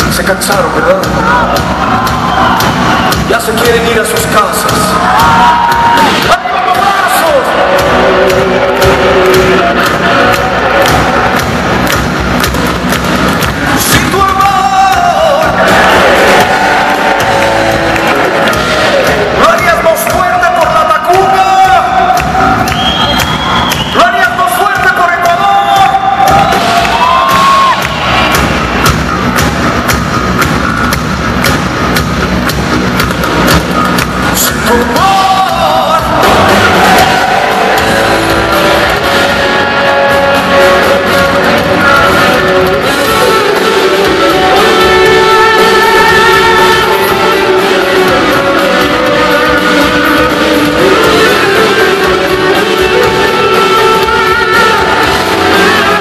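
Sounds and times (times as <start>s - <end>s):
heavy metal band playing live: 0.0s - 56.0s.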